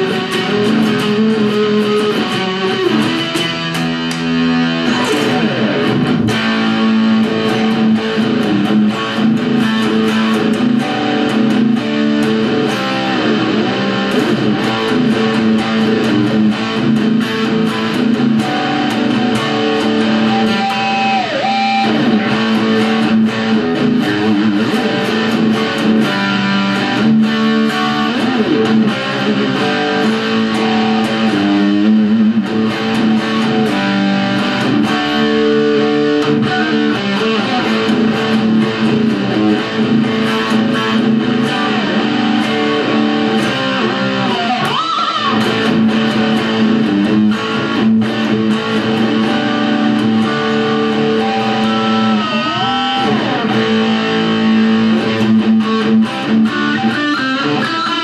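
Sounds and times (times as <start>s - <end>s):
distorted electric guitar: 0.0s - 58.0s.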